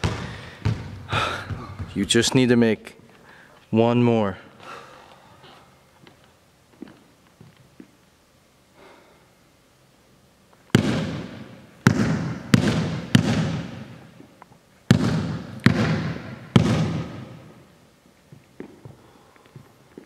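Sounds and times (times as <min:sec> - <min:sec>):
basketball bouncing on hardwood floor: 0:00.0 - 0:02.2, 0:10.7 - 0:14.0, 0:14.9 - 0:17.6.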